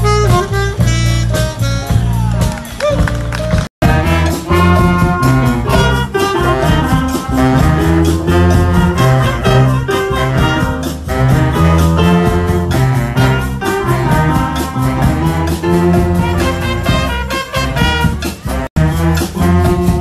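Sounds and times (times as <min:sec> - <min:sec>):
jazz band playing swing: 0:00.0 - 0:20.0.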